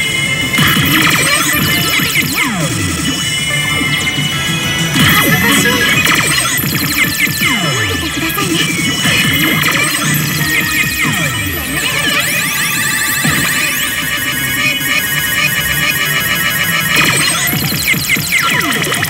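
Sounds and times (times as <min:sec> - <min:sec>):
slot machine electronic music: 0:00.0 - 0:19.0.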